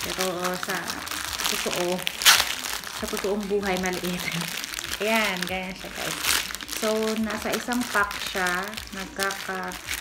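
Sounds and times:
plastic packaging crinkling: 0.0 - 10.0
sharp plastic crackle: 0.0 - 10.0.

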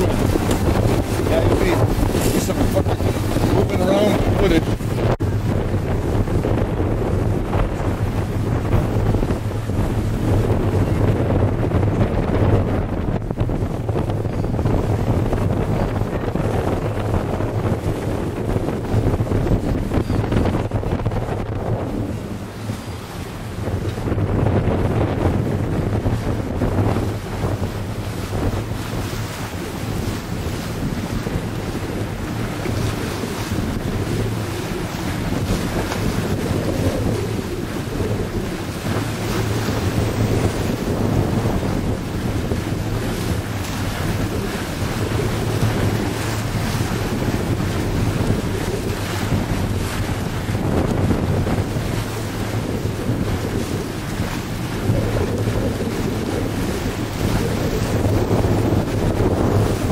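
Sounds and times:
water slapping along hull: 0.0 - 59.9
wind buffeting microphone: 0.0 - 59.9.

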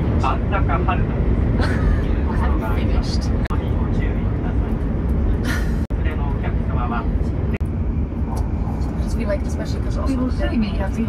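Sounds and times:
people talking: 0.0 - 4.8, 5.4 - 7.6, 8.6 - 11.0.

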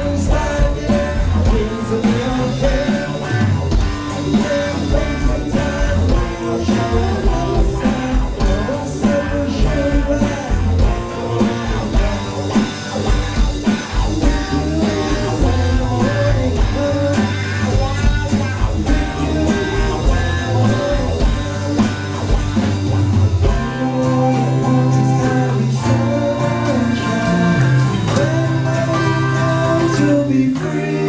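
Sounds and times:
person singing: 0.0 - 12.8, 14.0 - 22.3, 23.4 - 31.0
drum beat: 0.0 - 24.2
bass guitar: 0.0 - 31.0
guitars: 0.0 - 31.0
keyboard: 0.0 - 31.0.

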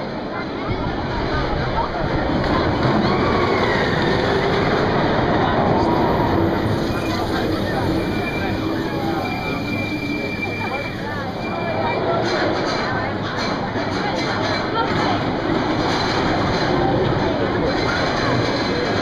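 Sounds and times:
roller coaster train rumbling: 0.0 - 19.0
voices: 0.0 - 19.0.

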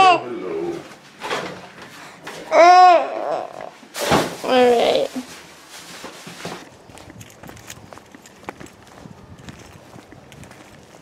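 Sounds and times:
soft low coo: 2.5 - 3.8
handling noise: 3.9 - 11.0.

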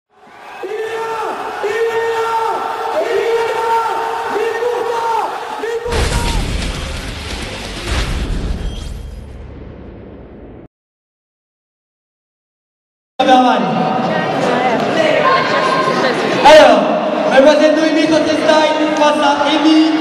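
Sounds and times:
heavy boom: 5.9 - 10.7.

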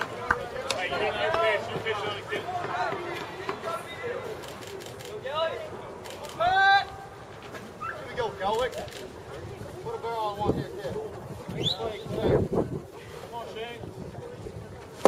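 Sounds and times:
people shouting encouragement: 0.5 - 4.2.

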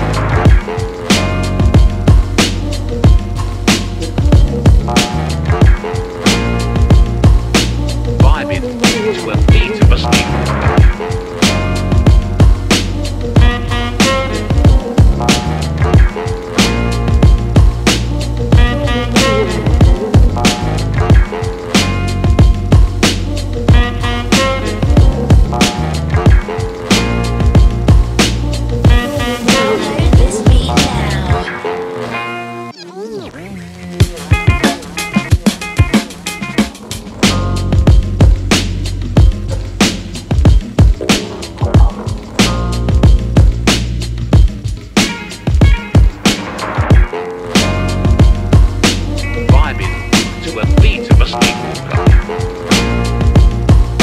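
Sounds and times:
sustained jazzy chords: 0.0 - 54.0
kick and snare drums: 0.4 - 12.8, 34.4 - 54.0
kick drum: 5.6 - 5.8, 6.8 - 7.4, 14.6 - 15.2, 22.3 - 22.9, 24.9 - 25.6, 27.4 - 28.1, 30.2 - 30.8, 37.8 - 38.4, 40.3 - 41.0, 42.9 - 43.6, 44.4 - 44.6, 45.5 - 46.2, 48.1 - 48.8, 53.2 - 54.0.

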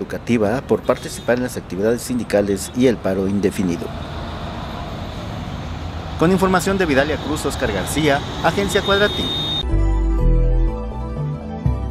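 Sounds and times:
road traffic rumble: 0.0 - 9.6.

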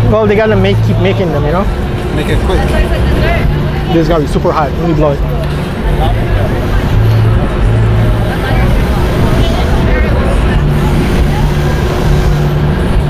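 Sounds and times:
faint crowd voices: 0.0 - 13.0
low mechanical hum and rumble: 0.0 - 13.0.

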